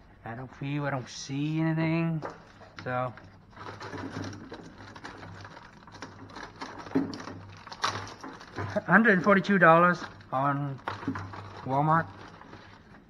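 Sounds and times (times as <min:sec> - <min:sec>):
plastic bag crinkling: 0:02.3 - 0:13.0.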